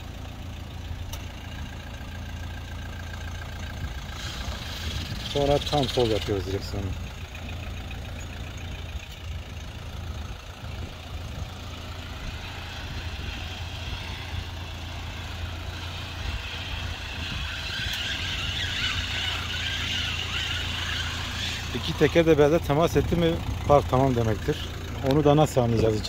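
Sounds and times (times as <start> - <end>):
car engine humming: 0.0 - 26.0.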